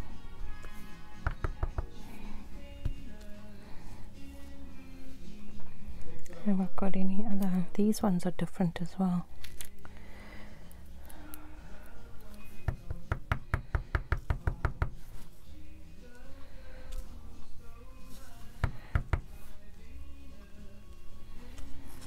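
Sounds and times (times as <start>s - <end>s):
faint background music: 0.0s - 22.0s
stamp block tapping on desk: 1.2s - 1.9s, 12.7s - 14.9s.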